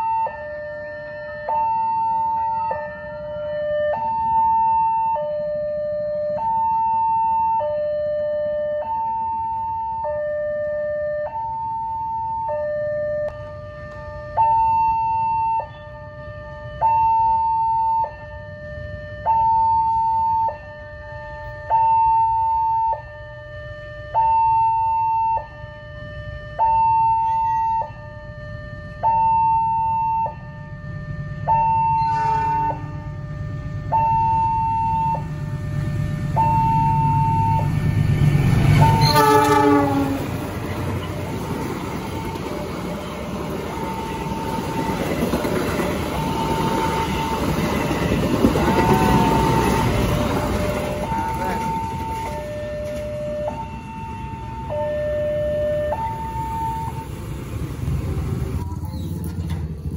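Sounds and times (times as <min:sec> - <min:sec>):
level crossing two-tone alarm: 0:00.0 - 0:38.0, 0:38.7 - 0:40.0, 0:41.9 - 0:57.2
train rumble: 0:28.2 - 0:59.9
train horn: 0:32.0 - 0:33.4, 0:38.7 - 0:41.2.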